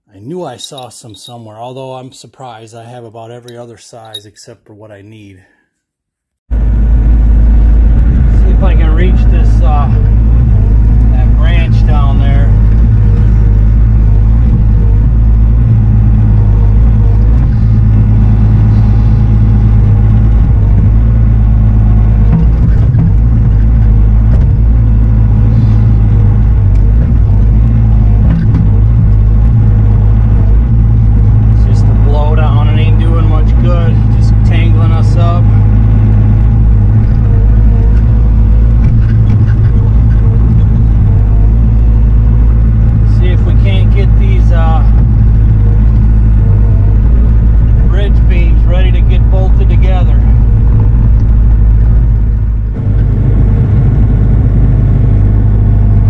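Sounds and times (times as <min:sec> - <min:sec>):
diesel excavator engine running: 0:06.5 - 0:56.0.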